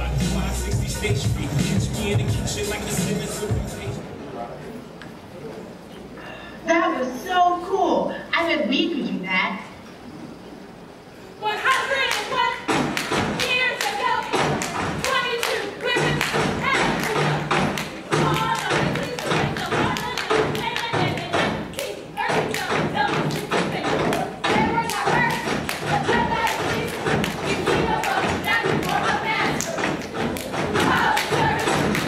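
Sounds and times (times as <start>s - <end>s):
stomping and clapping rhythm: 0.0s - 4.0s, 11.5s - 32.0s
voices chanting: 11.4s - 32.0s.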